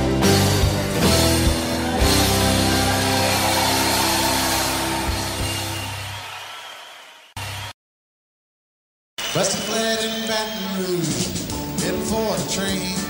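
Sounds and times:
country band holding chord: 0.0s - 5.9s.

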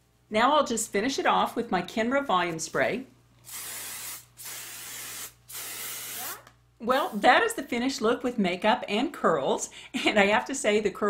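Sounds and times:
hairspray hissing bursts: 3.4s - 7.2s.

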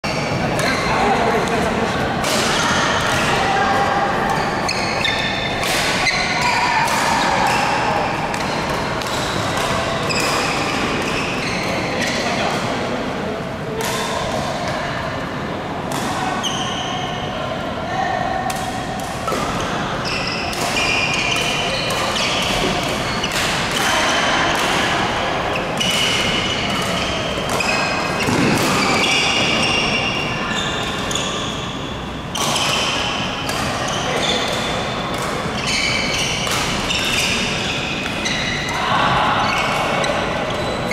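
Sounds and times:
players' voices: 0.0s - 40.9s
shoes squeaking on floor: 4.3s - 6.7s, 9.1s - 12.4s, 16.4s - 17.2s, 20.0s - 23.4s, 25.5s - 33.0s, 33.8s - 38.7s, 39.4s - 40.9s.

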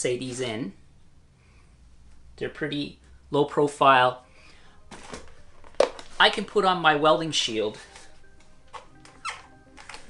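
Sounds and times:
faint background music: 0.0s - 10.0s
plastic helmet creaking: 4.9s - 6.2s, 8.7s - 10.0s.

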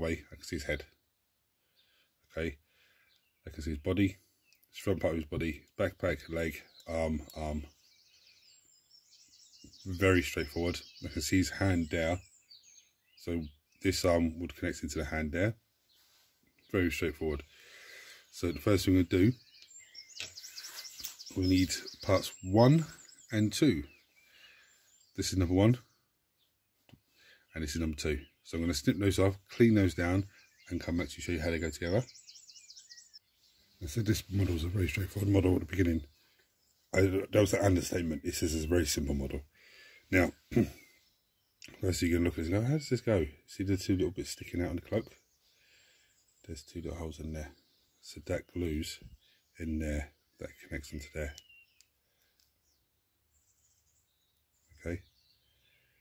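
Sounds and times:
bird chirping trill: 3.0s - 56.0s
man's voice: 21.3s - 23.9s, 33.8s - 36.1s, 37.0s - 39.5s.

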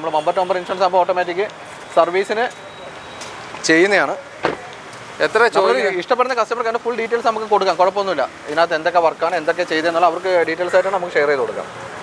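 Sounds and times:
short sharp knock: 4.4s - 4.7s.

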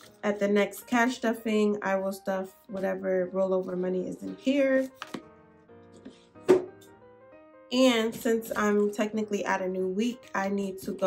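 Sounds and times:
soft background music: 0.0s - 11.0s
wallet thumping on table: 6.4s - 6.8s.

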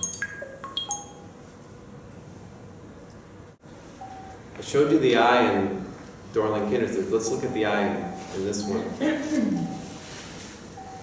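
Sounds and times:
bright chime notes: 0.0s - 1.3s.

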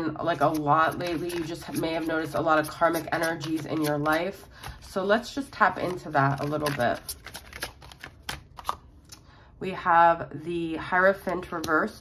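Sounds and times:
cards being shuffled: 0.3s - 5.0s, 5.7s - 8.9s.

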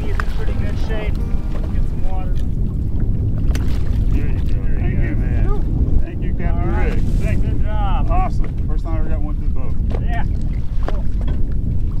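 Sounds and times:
man's voice: 0.0s - 2.4s
wind buffeting microphone: 0.0s - 12.0s.

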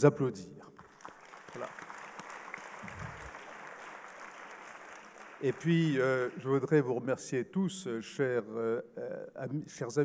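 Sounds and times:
audience applauding: 0.8s - 6.7s.

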